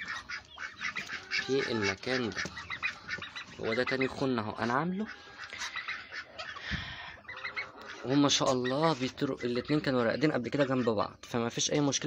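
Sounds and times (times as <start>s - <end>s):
duck calling: 0.0s - 11.2s.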